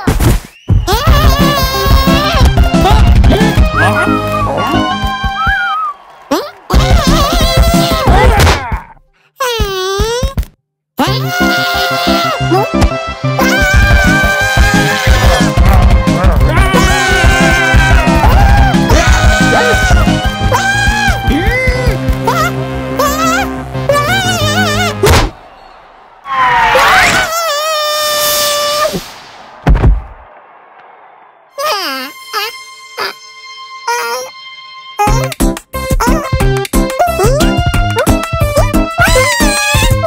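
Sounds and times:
cartoon character crying wail: 0.9s - 3.0s, 11.0s - 12.7s, 13.4s - 25.0s, 26.6s - 28.9s, 31.6s - 33.2s, 39.0s - 40.0s
lively background music: 1.1s - 5.7s, 11.1s - 25.2s, 32.1s - 40.0s
cartoon high held tone: 16.6s - 25.1s, 31.6s - 35.4s.

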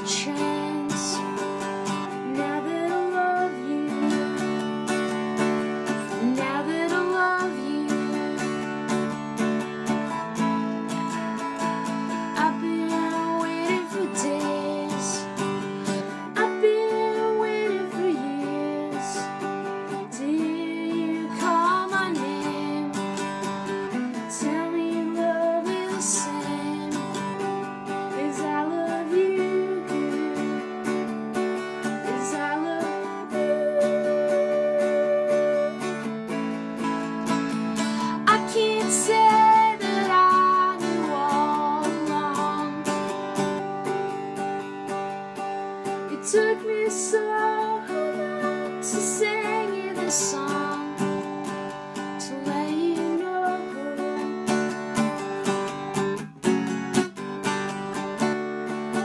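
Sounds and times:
mandolin melody and strummed chords: 0.0s - 59.0s.

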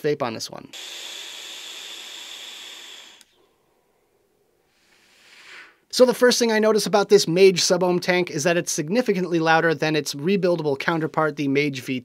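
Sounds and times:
vape airflow hiss with whistle: 4.7s - 5.8s.

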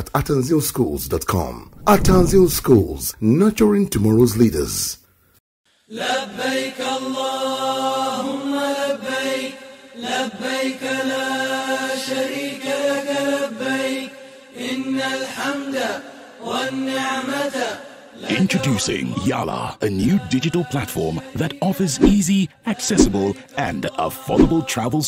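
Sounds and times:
person chanting: 1.4s - 3.3s, 5.9s - 25.0s.

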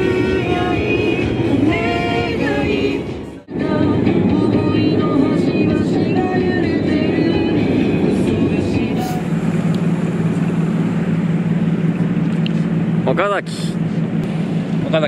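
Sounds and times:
background music: 0.0s - 10.1s
low engine hum: 0.0s - 15.0s
low vehicle rumble: 0.0s - 15.0s.

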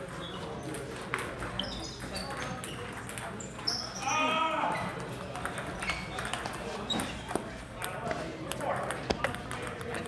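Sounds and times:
table tennis balls clicking: 0.0s - 3.7s, 4.8s - 10.0s
people talking: 0.0s - 10.0s.

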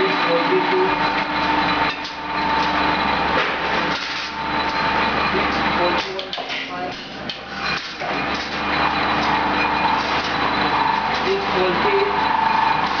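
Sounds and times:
workshop machinery: 0.0s - 13.0s.

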